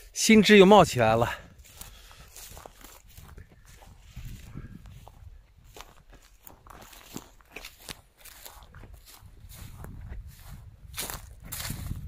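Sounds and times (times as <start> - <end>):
footsteps through dry grass: 0.0 - 12.0.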